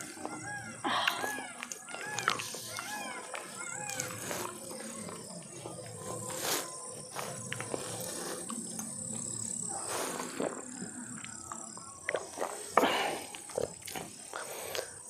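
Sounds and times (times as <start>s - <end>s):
person chewing: 0.0s - 15.0s
person gulping water: 10.3s - 14.9s.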